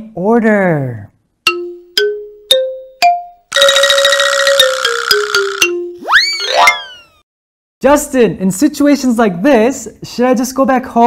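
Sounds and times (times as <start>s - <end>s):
rising chime ding: 4.6s - 7.2s.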